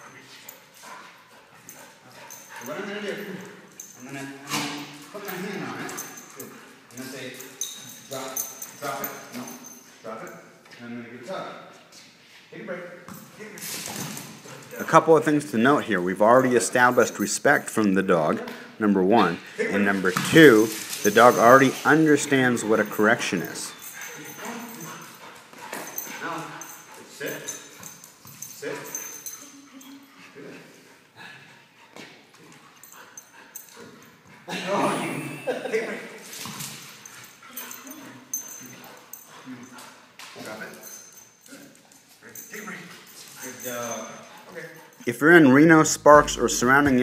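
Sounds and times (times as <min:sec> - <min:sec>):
dog paws tapping on floor: 0:19.8 - 0:29.4
faint dog sounds: 0:21.0 - 0:36.2, 0:37.1 - 0:45.1.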